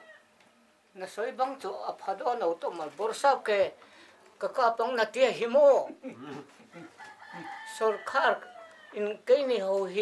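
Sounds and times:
rooster crowing faintly: 6.3s - 9.2s.

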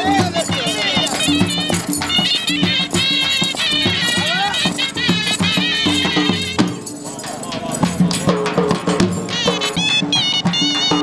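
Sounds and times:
drum beating a rhythm: 0.0s - 11.0s
reed pipe melody: 0.0s - 11.0s.

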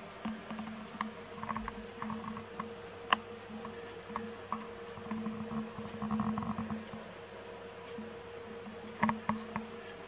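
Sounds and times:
low electrical buzz and hum: 0.0s - 10.0s.

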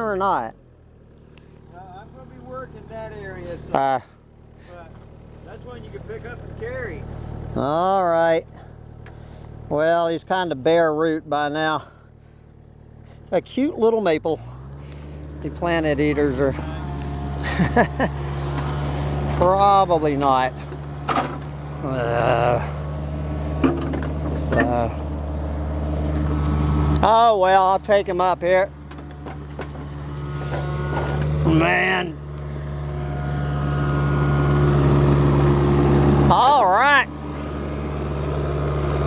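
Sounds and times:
excavator diesel engine running: 0.0s - 39.0s.

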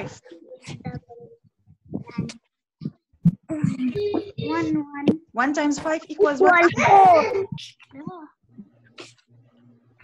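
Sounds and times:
child's voice over video call: 0.0s - 2.4s, 3.5s - 8.4s.

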